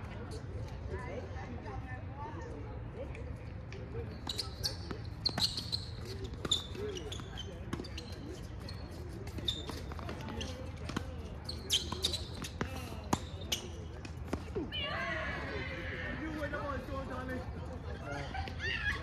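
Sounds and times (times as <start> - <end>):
tennis balls bouncing on hard court: 4.2 - 14.6.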